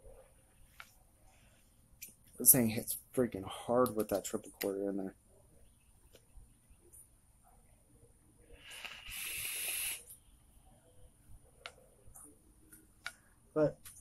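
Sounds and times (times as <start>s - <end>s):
air hissing through vape atomizer: 8.6s - 10.2s.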